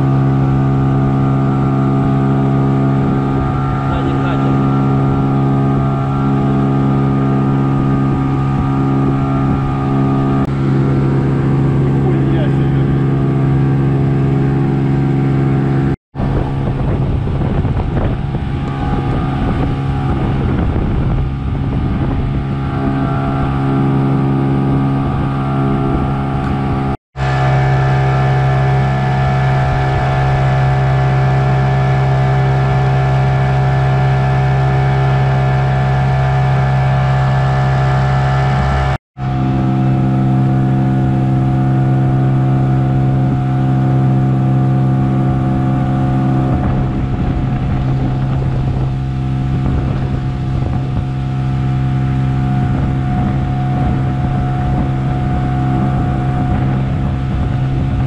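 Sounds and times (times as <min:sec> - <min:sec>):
outboard motor running: 0:00.0 - 0:58.0.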